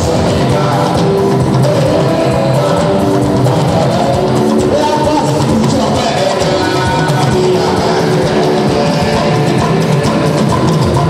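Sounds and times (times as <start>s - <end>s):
drums: 0.0s - 11.0s
electric guitar: 0.0s - 11.0s
live band music: 0.0s - 11.0s.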